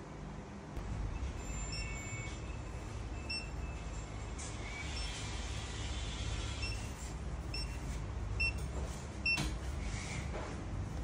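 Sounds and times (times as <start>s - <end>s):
steady low hum: 0.0s - 11.0s
monitor beeping: 1.0s - 5.6s, 6.5s - 9.6s.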